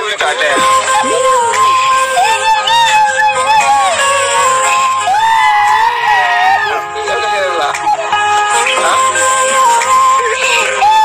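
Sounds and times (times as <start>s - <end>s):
background music with bass line: 0.2s - 11.0s.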